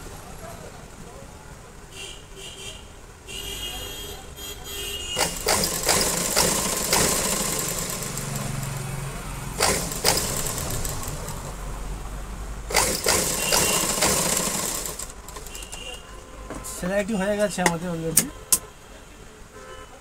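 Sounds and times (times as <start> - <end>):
sewing machine running: 5.2 - 9.0, 9.6 - 11.5, 12.7 - 15.6
sharp clicks and knocks: 16.5 - 18.7.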